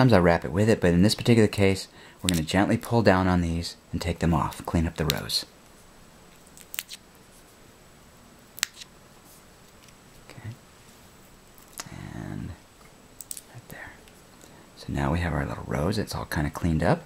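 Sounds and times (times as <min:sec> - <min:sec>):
dry rosebud sepals snapping: 0:06.6 - 0:07.0, 0:08.6 - 0:08.9
low hum of a voice: 0:10.2 - 0:10.6, 0:11.8 - 0:12.7, 0:13.5 - 0:14.1, 0:14.8 - 0:17.0.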